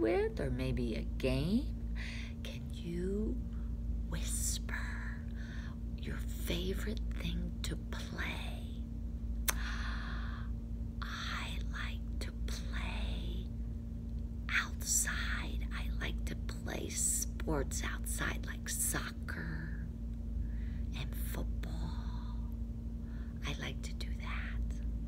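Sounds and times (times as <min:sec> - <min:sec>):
steady low hum: 0:00.0 - 0:25.0
woman whispering: 0:04.1 - 0:05.4, 0:06.1 - 0:08.8, 0:11.0 - 0:13.5, 0:14.5 - 0:19.9, 0:20.9 - 0:22.5, 0:23.4 - 0:24.8.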